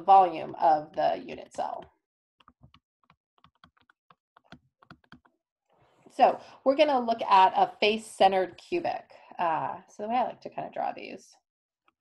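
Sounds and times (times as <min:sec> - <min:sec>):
stylus tapping on tablet screen: 0:00.0 - 0:05.4.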